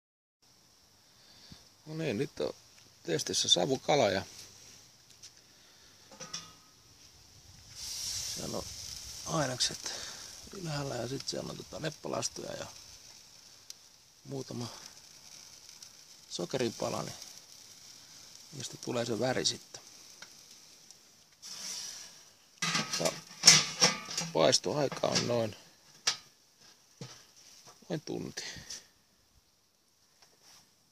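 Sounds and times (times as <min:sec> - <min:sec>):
high sizzling hiss of smoking fish: 0:00.4 - 0:30.9
man speaking: 0:01.8 - 0:04.4, 0:08.3 - 0:12.8, 0:14.2 - 0:14.9, 0:16.3 - 0:17.2, 0:18.5 - 0:19.9, 0:22.9 - 0:23.2, 0:24.2 - 0:25.6, 0:27.8 - 0:28.8.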